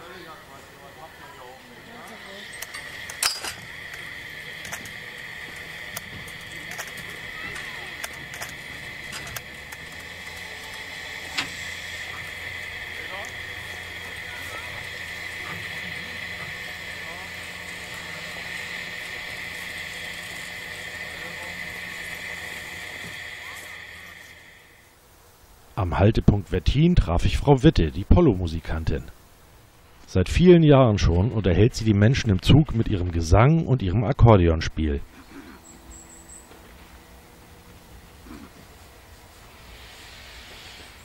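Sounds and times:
steam hissing: 0.0s - 25.0s, 35.0s - 41.0s
faint low hum: 0.0s - 40.5s.

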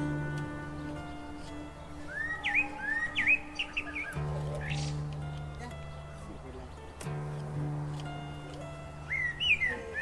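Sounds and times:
bird chirping: 0.0s - 7.4s, 8.6s - 10.0s
background music with held tones: 0.0s - 10.0s.

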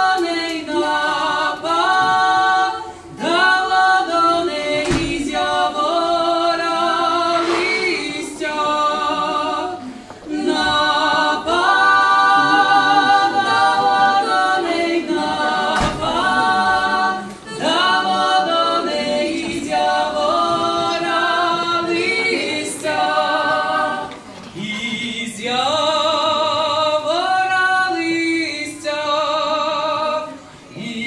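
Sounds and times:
folk trio singing a cappella: 0.0s - 31.0s.

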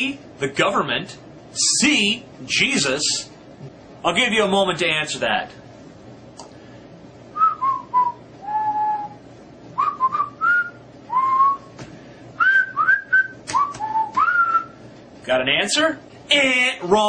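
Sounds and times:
person whistling a tune: 7.4s - 9.2s, 9.8s - 11.7s, 12.4s - 14.8s.

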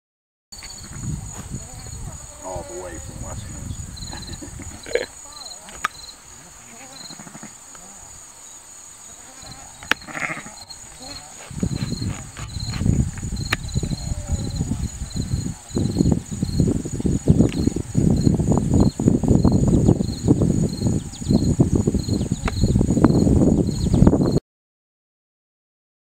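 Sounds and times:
insects chirping: 0.6s - 24.4s.

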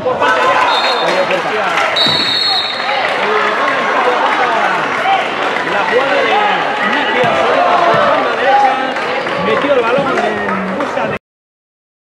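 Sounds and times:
referee's whistle blast: 0.6s - 1.3s, 2.0s - 3.0s.

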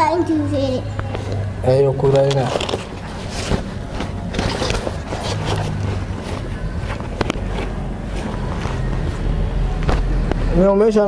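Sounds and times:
shoes clacking: 2.4s - 10.1s.

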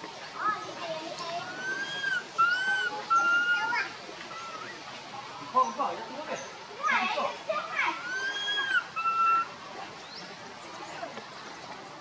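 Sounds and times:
baby monkey crying: 1.5s - 3.7s, 8.0s - 9.5s.

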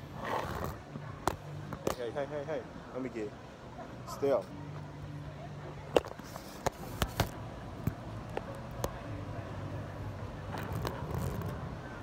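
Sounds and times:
low hum of traffic: 0.0s - 12.0s.

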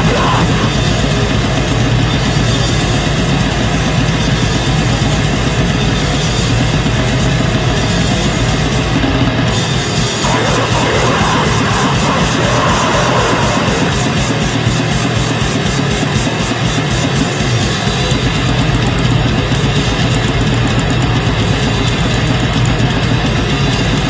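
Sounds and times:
rapid drumming: 0.0s - 5.6s, 9.9s - 23.2s
distorted metal guitars: 0.0s - 24.0s.

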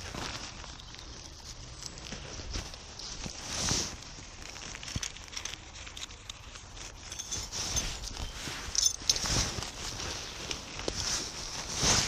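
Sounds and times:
footsteps on dry leaves: 0.0s - 12.0s
rustling swish of leaves: 0.0s - 12.0s.

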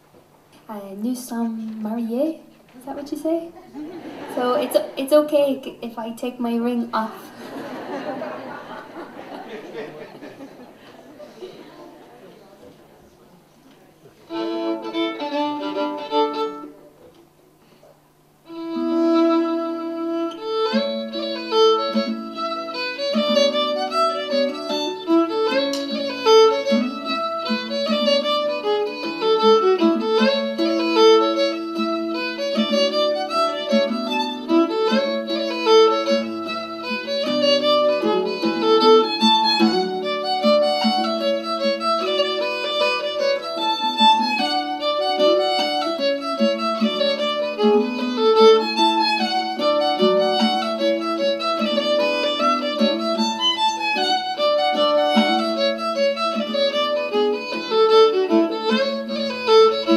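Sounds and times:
acoustic guitar accompaniment: 0.0s - 59.9s
fiddle playing: 3.2s - 12.1s, 14.2s - 17.1s, 18.4s - 59.9s.

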